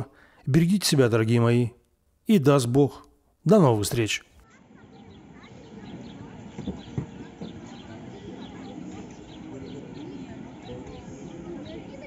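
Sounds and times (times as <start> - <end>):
birds chirping: 3.5 - 12.0
distant voices: 4.4 - 12.0.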